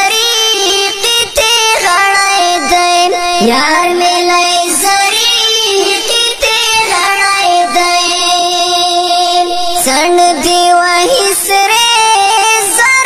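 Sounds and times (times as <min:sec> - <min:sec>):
person singing long notes: 0:00.0 - 0:12.8.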